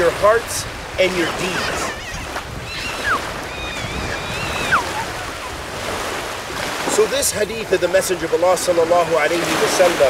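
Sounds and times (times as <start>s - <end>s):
wind on microphone: 0.0s - 7.9s
small waves washing on beach: 0.0s - 10.0s.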